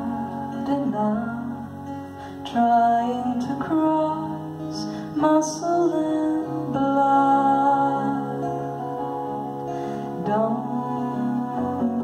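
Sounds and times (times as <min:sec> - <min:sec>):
woman singing: 0:00.0 - 0:08.8, 0:10.1 - 0:12.0
acoustic guitar strumming: 0:00.0 - 0:12.0.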